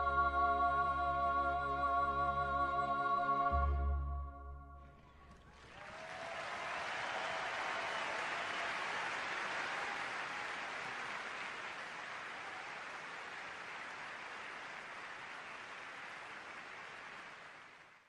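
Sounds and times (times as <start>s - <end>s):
audience applauding: 5.3s - 18.0s.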